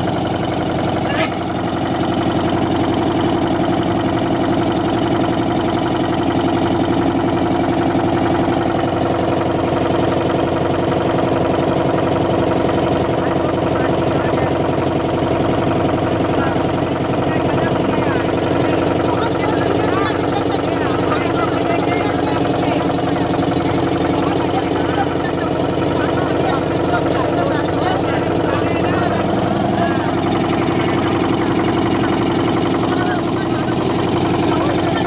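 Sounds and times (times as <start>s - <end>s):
boat engine running: 0.0s - 35.0s
people chattering: 16.2s - 35.0s.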